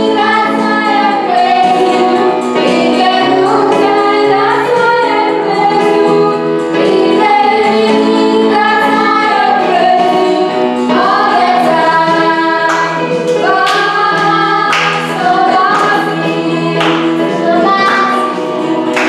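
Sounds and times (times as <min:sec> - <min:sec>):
electronic keyboard: 0:00.0 - 0:19.0
woman and children singing: 0:00.0 - 0:19.0
sharp hand claps: 0:12.7 - 0:13.9, 0:14.7 - 0:16.1, 0:16.8 - 0:17.2.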